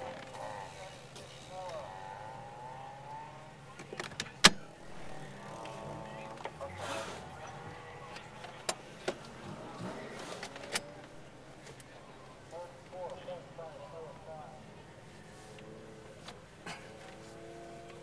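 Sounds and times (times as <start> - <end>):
people talking: 0.0 - 2.4, 3.2 - 15.3.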